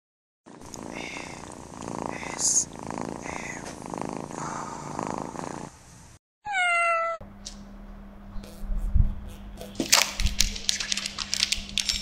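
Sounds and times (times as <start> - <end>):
cat purring: 0.5 - 5.8.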